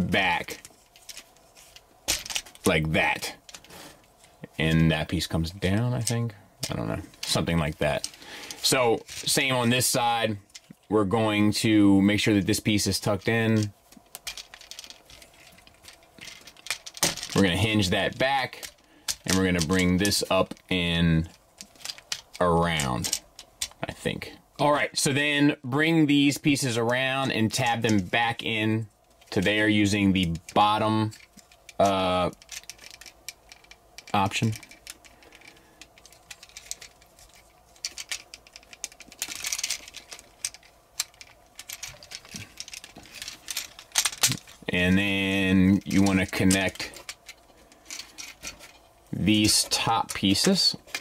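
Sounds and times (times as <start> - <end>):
scraping rustle: 0.0 - 24.4, 26.1 - 51.0
plastic toy parts clicking: 0.8 - 2.6, 13.6 - 23.8, 26.9 - 45.0, 45.8 - 48.8, 49.5 - 51.0.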